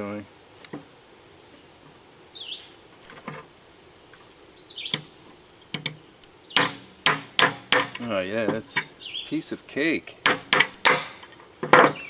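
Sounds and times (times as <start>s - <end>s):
hammer striking metal: 6.6s - 8.0s, 10.2s - 11.2s.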